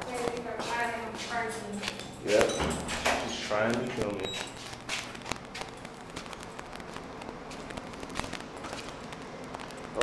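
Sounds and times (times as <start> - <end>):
footsteps on concrete floor: 0.0 - 9.9.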